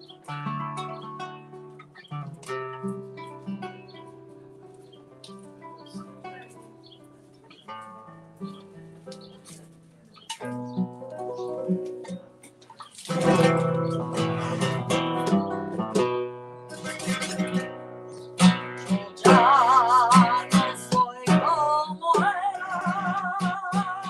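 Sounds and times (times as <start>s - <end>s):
flamenco guitar playing: 0.0s - 24.0s
woman singing with vibrato: 19.2s - 24.0s.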